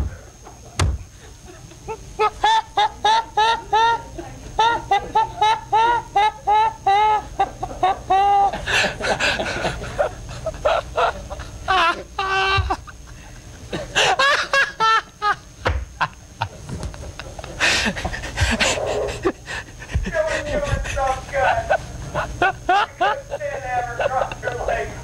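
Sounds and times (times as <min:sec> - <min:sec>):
high-pitched squealing laughter: 0:01.9 - 0:13.3.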